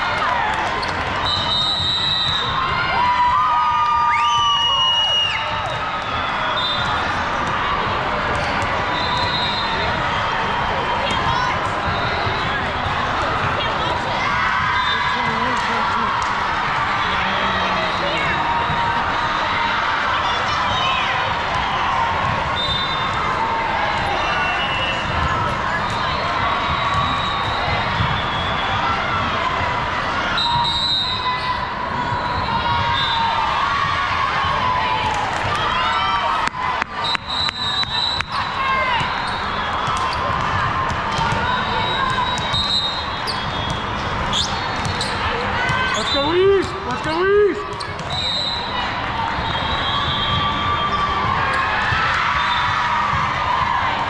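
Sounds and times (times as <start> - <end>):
chatter of voices: 9.6 - 30.4
volleyball being hit and bouncing: 39.8 - 42.6.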